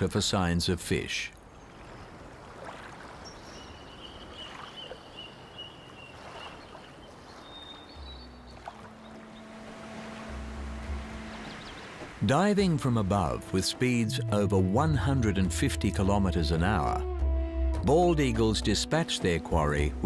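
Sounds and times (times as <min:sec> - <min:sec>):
low music notes with bass swells: 0:08.1 - 0:20.0.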